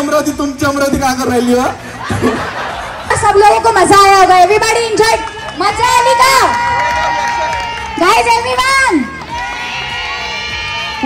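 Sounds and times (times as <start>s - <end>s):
music playing: 0.0s - 11.0s
audience cheering and shouting: 4.0s - 11.0s.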